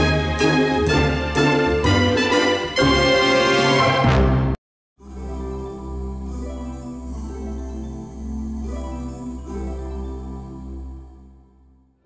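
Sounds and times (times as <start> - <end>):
brass-led cartoon theme music: 0.0 - 7.2.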